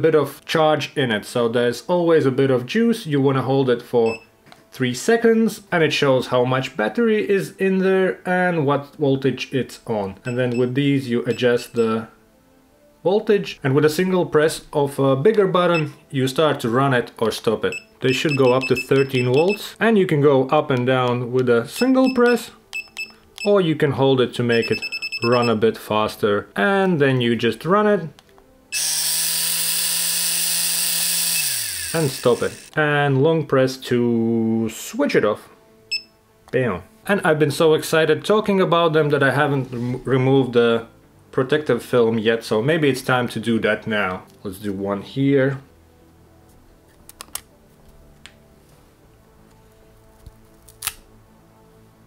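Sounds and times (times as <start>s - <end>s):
tattoo machine buzzing whine: 28.7s - 32.7s
plastic film peeling clicks: 46.9s - 47.5s, 50.2s - 51.1s.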